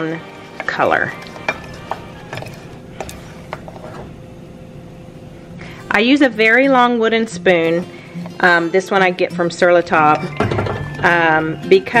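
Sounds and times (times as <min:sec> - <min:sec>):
wooden spoon scraping saucepan: 0:00.0 - 0:04.1.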